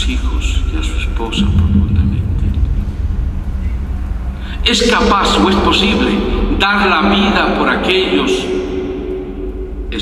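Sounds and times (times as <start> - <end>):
man speaking: 0.0 - 2.7, 4.5 - 8.6
faint hum: 0.0 - 10.0
low rumble: 0.1 - 10.0.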